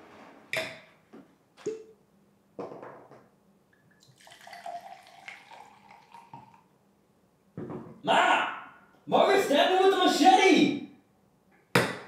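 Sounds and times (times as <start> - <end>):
wine pouring into a glass: 3.8 - 6.7.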